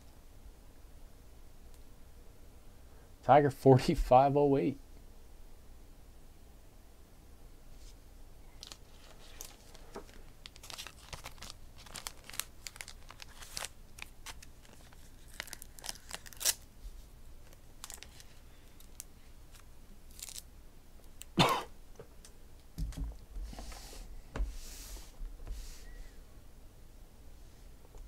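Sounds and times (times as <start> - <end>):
trading cards in plastic crinkling: 8.6 - 16.7, 17.4 - 20.4.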